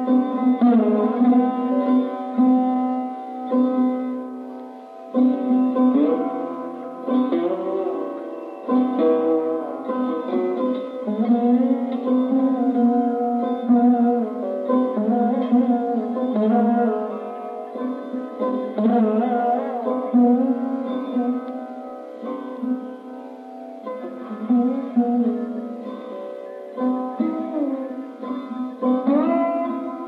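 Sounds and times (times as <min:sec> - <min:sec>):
sarod plucked notes: 0:00.0 - 0:30.0.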